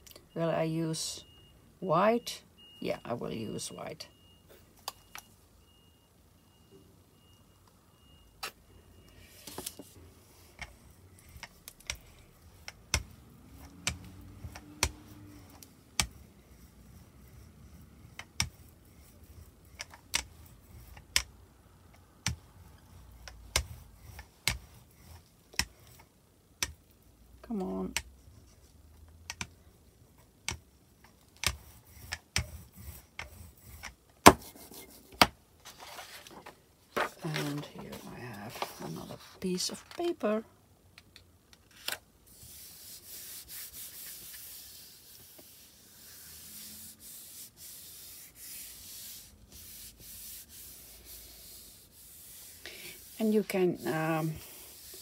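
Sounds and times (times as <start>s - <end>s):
paint roller clicking and tapping: 12.6s - 16.2s.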